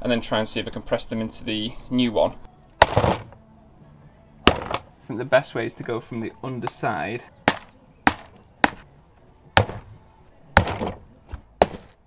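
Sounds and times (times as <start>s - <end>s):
rubber mallet knocking: 2.8s - 3.4s, 4.5s - 4.9s, 9.6s - 9.9s, 10.6s - 11.0s.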